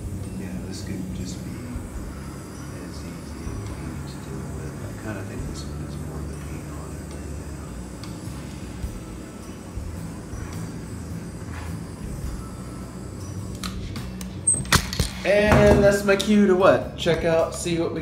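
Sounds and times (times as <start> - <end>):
butane torch burning: 0.0 - 17.8.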